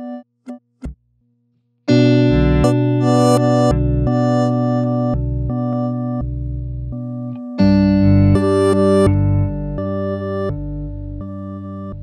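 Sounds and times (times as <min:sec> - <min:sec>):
electric guitar with glitch delay: 0:01.9 - 0:06.2.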